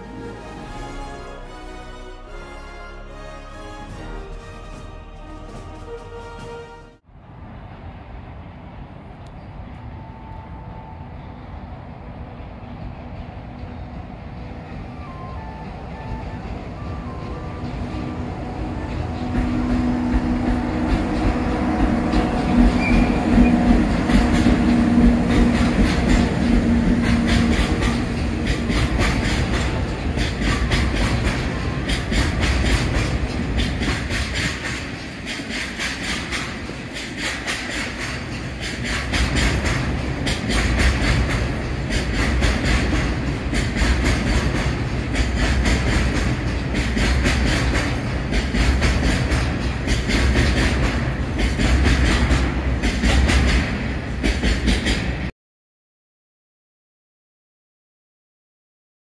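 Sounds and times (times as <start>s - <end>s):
electric locomotive hum: 0.0s - 55.3s
wagon wheels clickety-clack: 19.1s - 55.1s.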